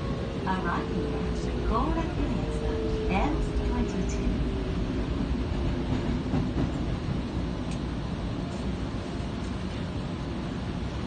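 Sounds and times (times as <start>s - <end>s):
train wheels and motors rumbling: 0.0s - 11.0s.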